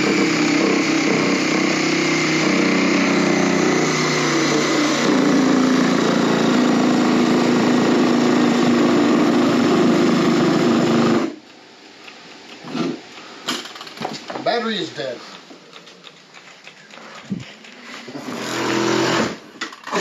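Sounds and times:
reciprocating saw cutting wood: 0.0s - 11.4s, 17.8s - 20.0s.

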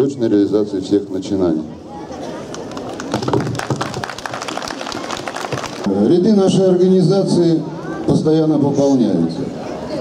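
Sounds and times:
crowd applauding: 2.5s - 5.9s.

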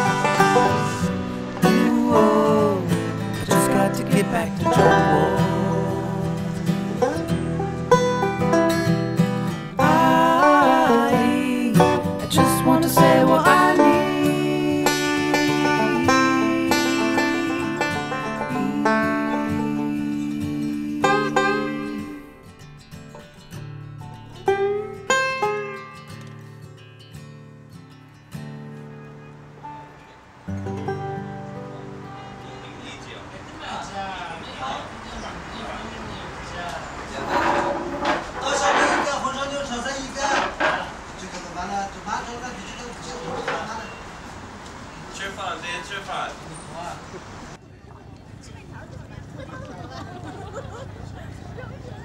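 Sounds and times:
banjo-led acoustic folk music: 0.0s - 27.5s, 28.2s - 33.3s, 37.2s - 44.0s.

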